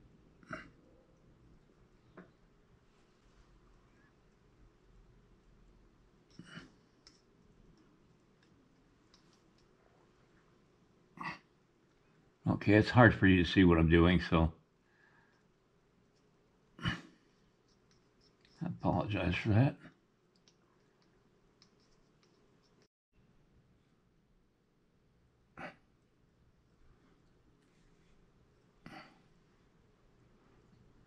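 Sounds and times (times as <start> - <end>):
faint clicks of sculpting tool: 6.2 - 9.8, 17.3 - 18.6, 19.8 - 22.9.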